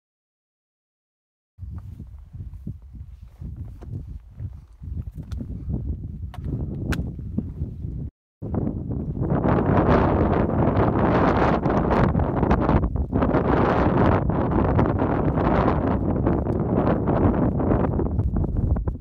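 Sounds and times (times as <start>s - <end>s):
gusty wind buffeting microphone: 1.6s - 19.0s.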